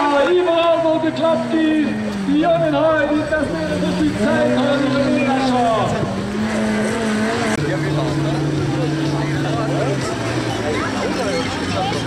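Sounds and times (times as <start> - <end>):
racing engine running: 0.0 - 12.0.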